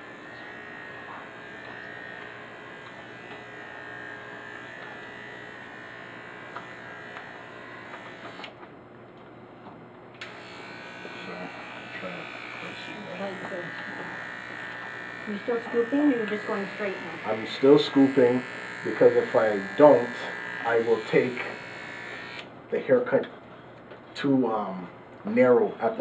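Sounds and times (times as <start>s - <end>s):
electric hair clipper buzzing: 0.0s - 8.6s, 10.2s - 22.5s.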